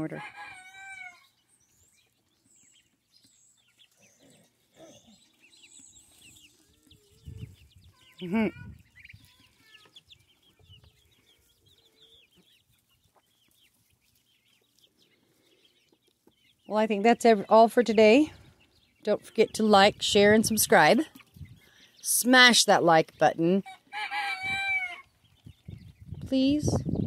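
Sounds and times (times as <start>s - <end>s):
quiet chicken clucks: 0.0s - 1.4s, 23.6s - 25.9s
chicks peeping: 0.0s - 27.0s.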